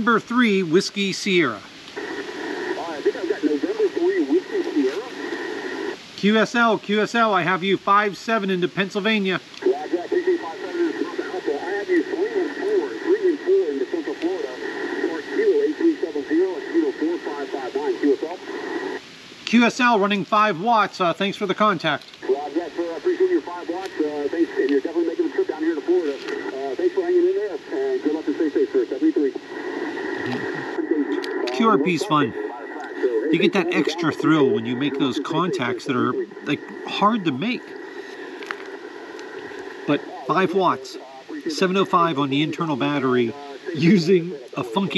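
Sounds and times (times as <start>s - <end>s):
radio voice over hiss: 0.0s - 44.9s.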